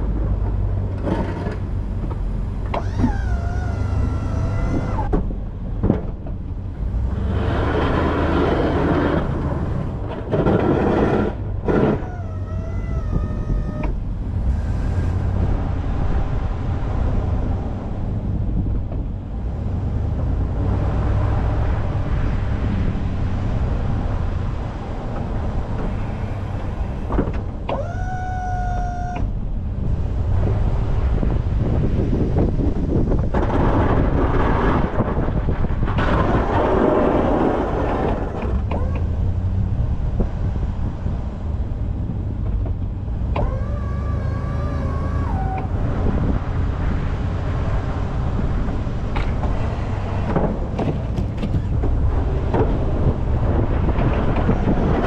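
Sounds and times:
hydraulic pump whine: 2.6s - 5.3s, 43.3s - 46.4s
snow scraping on plow blade: 7.2s - 12.0s.

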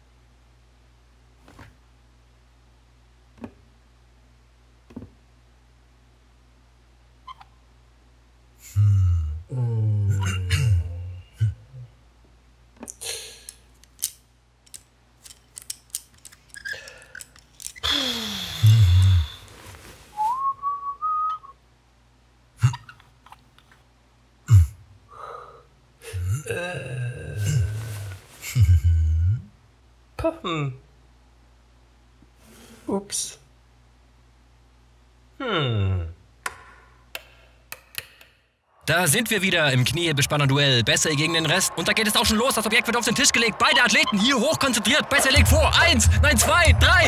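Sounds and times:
short rising whistle: 20.2s - 21.5s.

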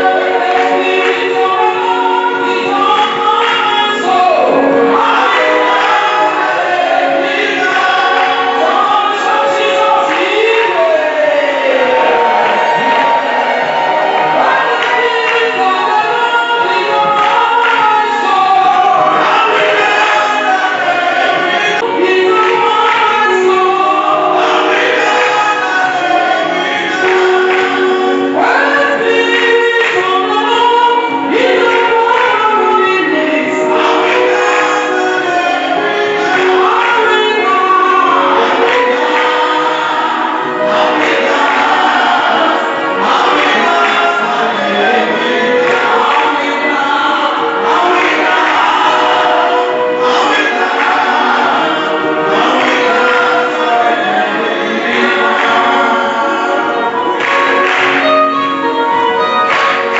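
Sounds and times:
man singing into microphone: 0.0s - 13.2s, 14.3s - 59.9s
congregation singing gospel: 0.0s - 59.9s.

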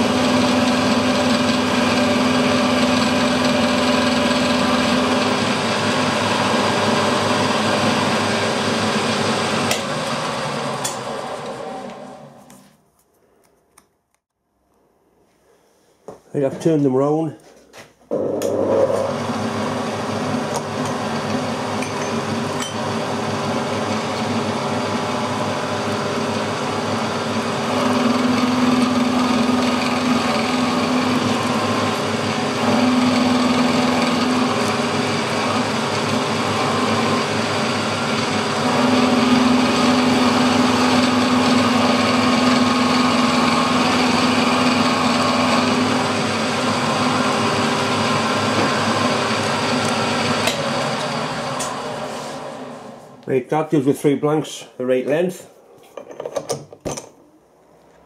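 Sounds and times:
milling machine cutting metal: 0.0s - 12.4s, 18.1s - 52.8s.

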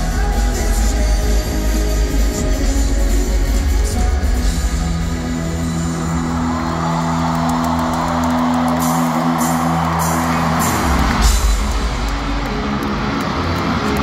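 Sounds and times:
crowd noise: 0.0s - 14.0s
live band over sound system: 0.0s - 14.0s.

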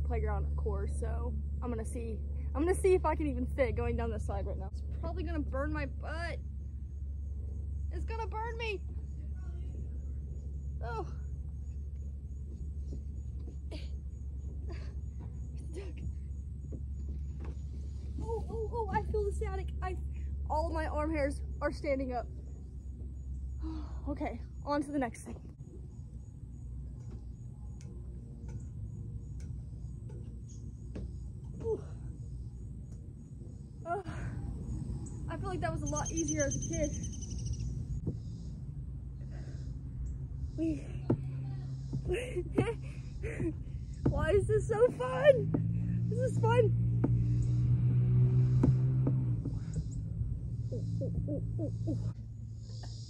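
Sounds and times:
low outdoor rumble: 0.0s - 53.0s.

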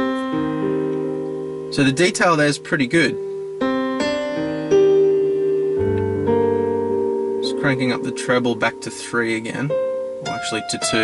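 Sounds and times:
slow piano notes on car stereo: 0.0s - 11.0s.

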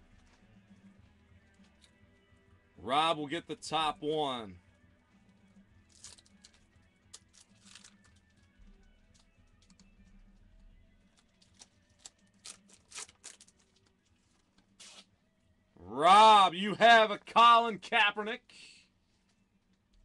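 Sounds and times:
foil card pack crinkling: 5.9s - 8.4s, 11.4s - 14.0s.

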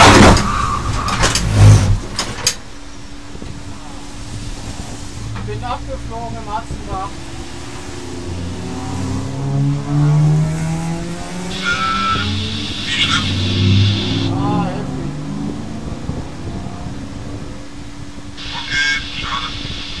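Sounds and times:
high squeals: 0.3s - 1.9s, 11.4s - 14.5s
race cars passing: 2.8s - 18.4s.

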